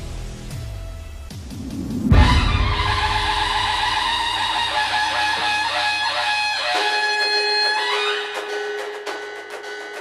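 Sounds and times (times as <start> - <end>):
melodic background music: 0.6 - 10.0
transition sound effect hit: 1.2 - 4.6.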